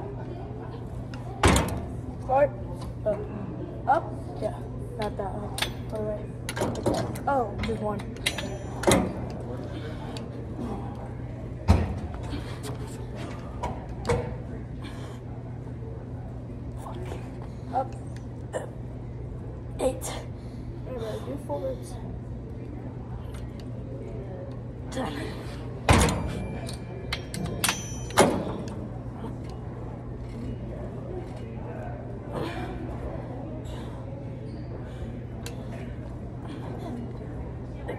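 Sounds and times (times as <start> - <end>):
steady low hum: 0.0 - 37.9
cable machine clanking: 5.6 - 9.4, 25.9 - 28.9.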